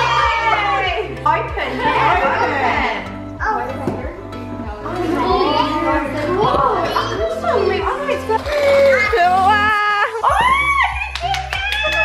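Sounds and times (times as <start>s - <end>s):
background music with beat: 0.0s - 12.0s
women's voices: 4.7s - 12.0s.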